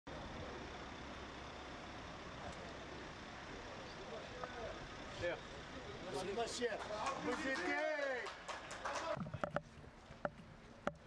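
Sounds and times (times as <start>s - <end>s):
car engine running: 0.1s - 7.3s
street noise: 0.1s - 11.0s.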